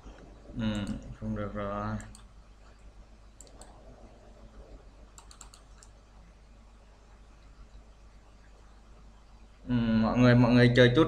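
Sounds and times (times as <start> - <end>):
steady low hum: 0.0 - 11.0
computer mouse and key clicks: 0.1 - 1.1, 1.9 - 2.8, 3.4 - 3.9, 5.1 - 6.0.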